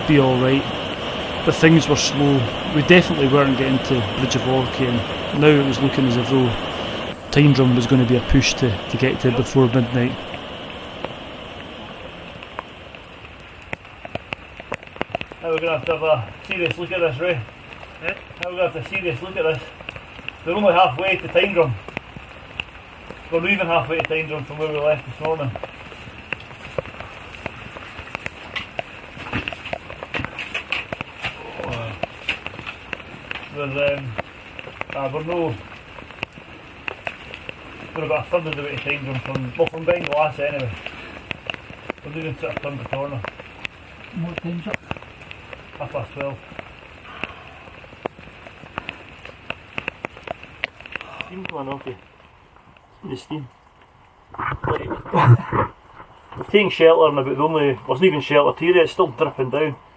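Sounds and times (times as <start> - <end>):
hiss of falling rain: 0.0 - 59.9
water dripping from roof: 0.0 - 59.9
man laughing: 55.0 - 55.7.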